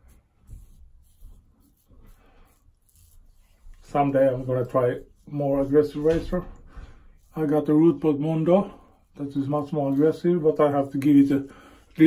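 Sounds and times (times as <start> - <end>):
razor scraping stubble: 0.0 - 12.0.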